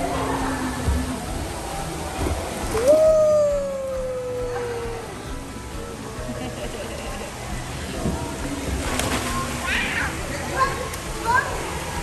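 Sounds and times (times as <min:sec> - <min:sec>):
splashing pool water: 0:00.0 - 0:12.0.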